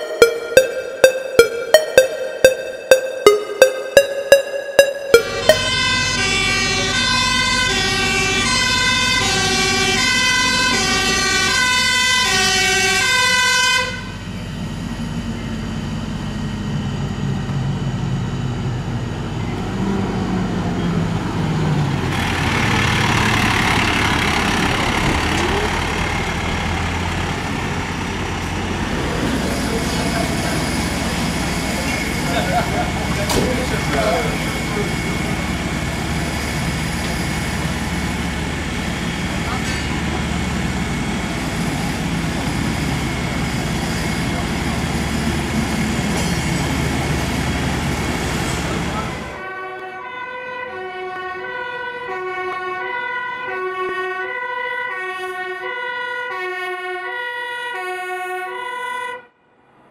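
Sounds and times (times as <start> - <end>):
fire engine two-tone siren: 0.0 - 59.8
fire truck diesel engines passing: 0.0 - 59.9
traffic noise: 5.2 - 15.6, 19.1 - 54.7, 58.6 - 59.9.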